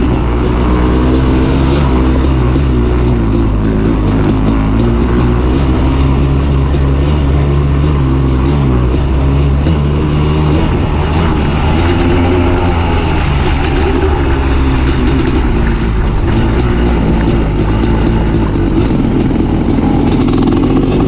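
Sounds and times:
motocross engine revving: 0:00.0 - 0:21.0.

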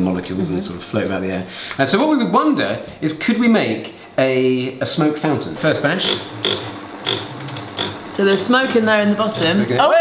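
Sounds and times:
low electric hum: 0:00.0 - 0:10.0.

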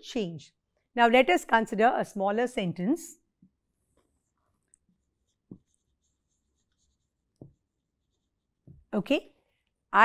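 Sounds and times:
marker squeaking on whiteboard: 0:03.9 - 0:08.6.

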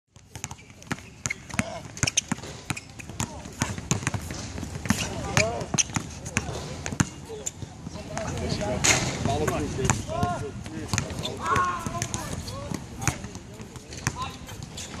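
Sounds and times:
basketball bouncing on court: 0:00.1 - 0:08.5, 0:09.2 - 0:14.7.

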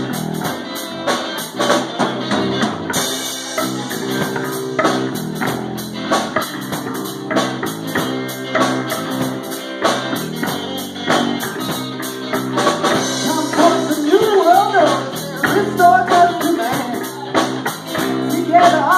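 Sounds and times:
drum kit beat: 0:00.0 - 0:18.9
electric guitars: 0:00.0 - 0:18.9.

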